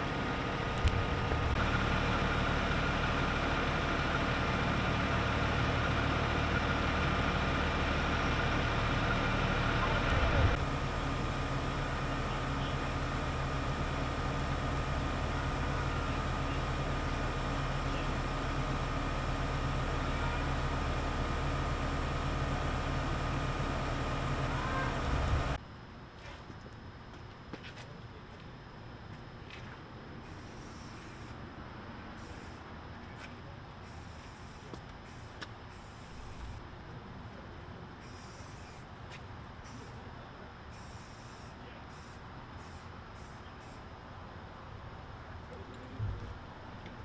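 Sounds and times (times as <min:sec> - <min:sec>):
engine whining over low hum: 0:00.0 - 0:25.8.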